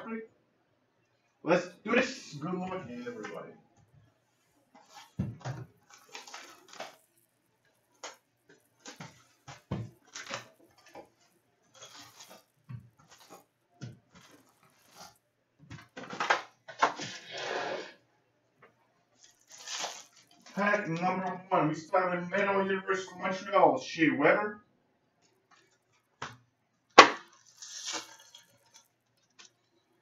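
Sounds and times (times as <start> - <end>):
foil packs rustling: 4.3 - 15.2, 19.2 - 21.0, 27.2 - 29.5.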